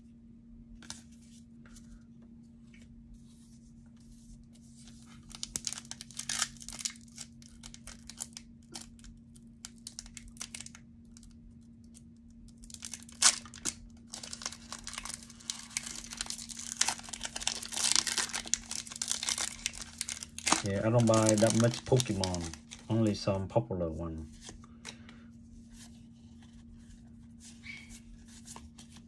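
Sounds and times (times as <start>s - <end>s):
foil wrapper tearing and crinkling: 5.0s - 23.2s.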